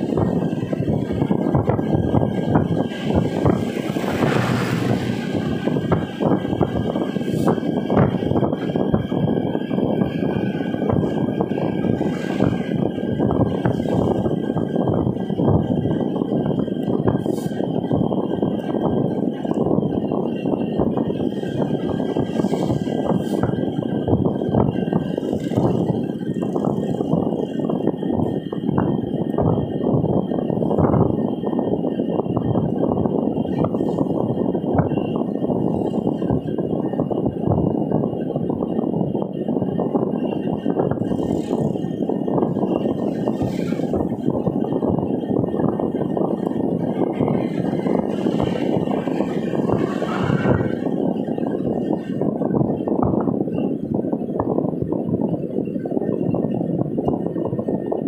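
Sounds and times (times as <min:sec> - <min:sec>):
car road noise inside cabin: 0:00.0 - 0:58.0.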